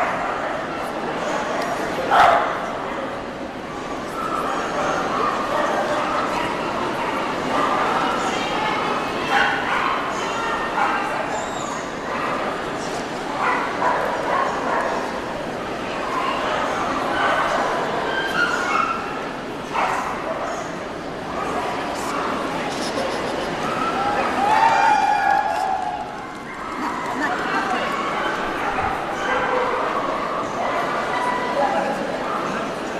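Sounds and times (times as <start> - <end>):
crowd chatter: 0.0 - 32.9
dogs barking: 2.1 - 2.6.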